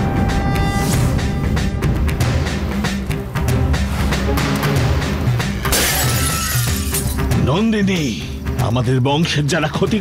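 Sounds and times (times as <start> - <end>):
dramatic score with pulsing bass: 0.0 - 5.8
shattering sound effect: 5.6 - 7.0.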